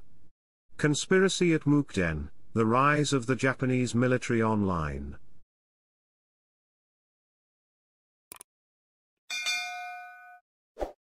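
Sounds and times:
bell-like notification ding: 9.3 - 10.4.

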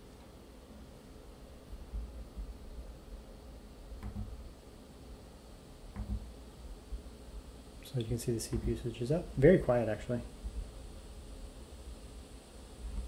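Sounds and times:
laptop fan hiss: 0.0 - 13.0.

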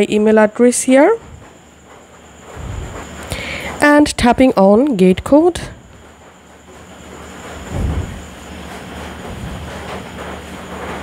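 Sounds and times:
faint high whine: 0.0 - 11.0
low rumble and hum: 2.4 - 3.7, 7.1 - 10.8.

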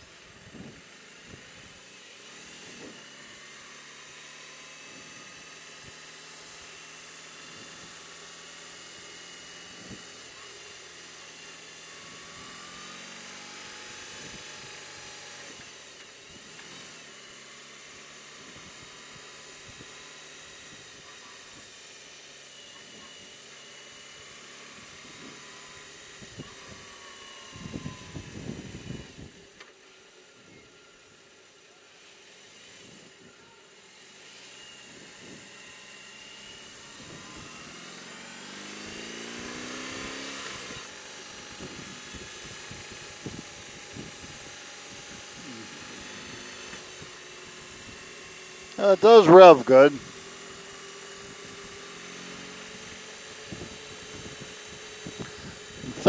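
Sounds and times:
motorcycle engine running: 34.2 - 48.7.

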